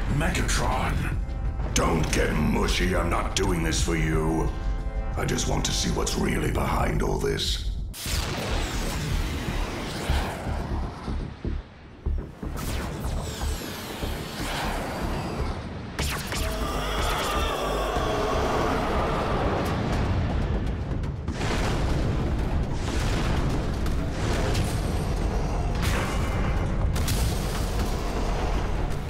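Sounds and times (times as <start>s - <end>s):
dramatic orchestral score: 0.0s - 7.7s, 8.3s - 29.0s
animal-like roar: 16.4s - 19.8s.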